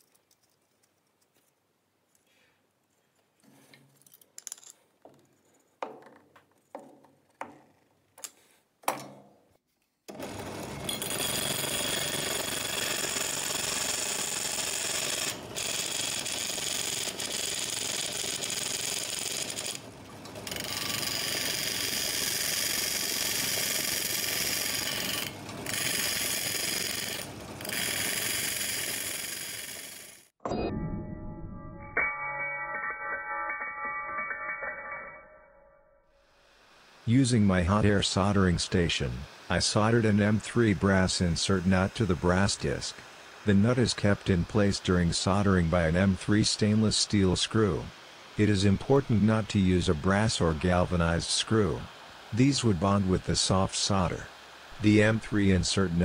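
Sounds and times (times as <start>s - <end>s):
sandpaper grinding spinning disc: 10.9s - 19.8s, 20.5s - 30.3s.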